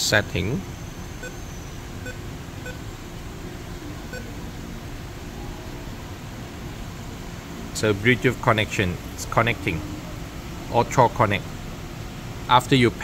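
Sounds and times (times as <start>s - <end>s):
steady background hum: 0.0s - 13.0s.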